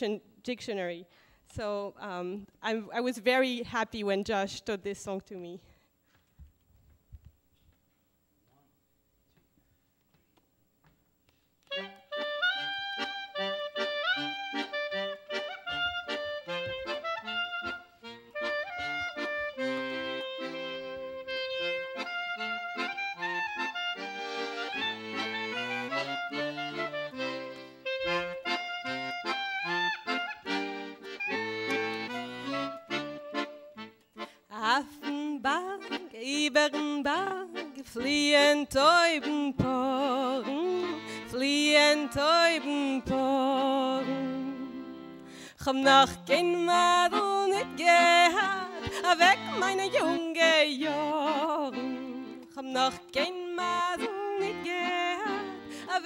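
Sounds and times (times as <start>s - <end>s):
clarinet: 11.6s - 34.2s, 39.8s - 45.4s, 46.3s - 56.0s
accordion: 11.6s - 56.0s.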